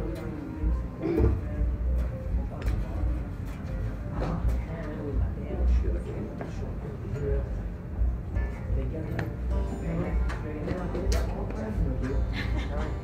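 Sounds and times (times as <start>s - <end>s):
faint crowd chatter: 0.0s - 13.0s.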